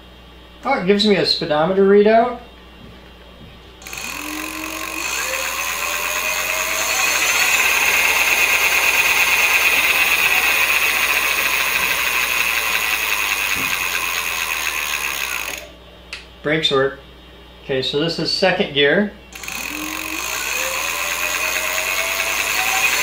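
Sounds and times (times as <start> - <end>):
electric hub motor whining: 3.8 - 15.8, 19.4 - 23.0.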